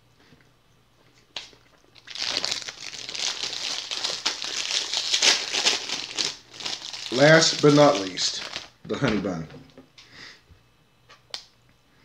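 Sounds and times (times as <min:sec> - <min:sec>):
plastic wrapper crinkling: 0:01.4 - 0:08.8.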